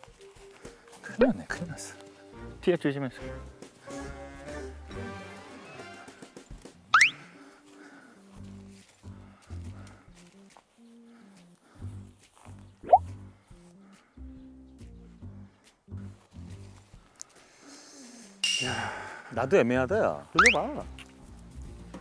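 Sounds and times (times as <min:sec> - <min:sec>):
light background music: 0:00.0 - 0:22.0
rising whistle sound effect: 0:07.0 - 0:07.2, 0:20.4 - 0:20.6.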